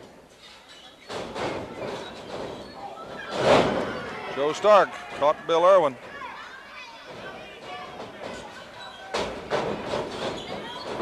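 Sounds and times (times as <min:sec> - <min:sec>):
wrestlers hitting each other: 0:01.1 - 0:05.3, 0:07.1 - 0:11.0
spectators calling out: 0:02.6 - 0:09.5.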